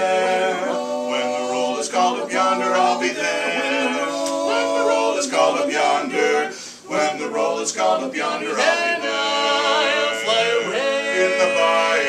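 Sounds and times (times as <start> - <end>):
men singing a cappella in harmony: 0.0 - 12.0.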